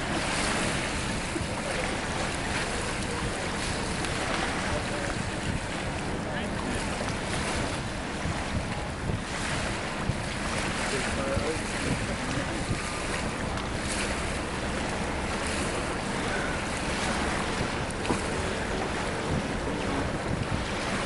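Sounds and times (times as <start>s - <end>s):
open water washing: 0.0s - 21.0s
wind buffeting microphone: 0.0s - 21.0s.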